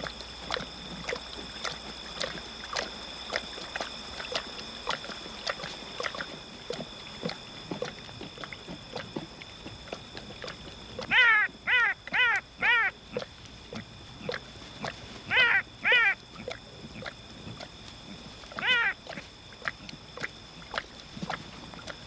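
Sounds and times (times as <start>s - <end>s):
night insects trilling: 0.0s - 22.0s
animal whining calls: 11.0s - 13.0s, 15.2s - 16.5s, 18.5s - 19.0s.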